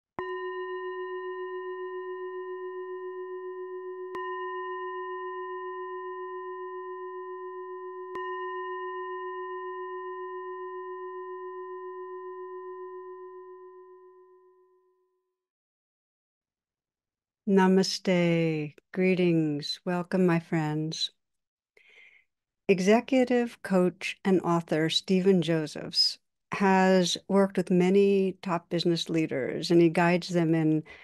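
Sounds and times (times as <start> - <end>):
singing bowl ringing: 0.2 - 15.1.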